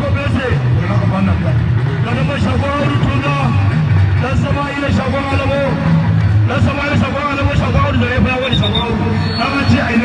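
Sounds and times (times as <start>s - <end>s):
heavy low backing: 0.0s - 10.0s.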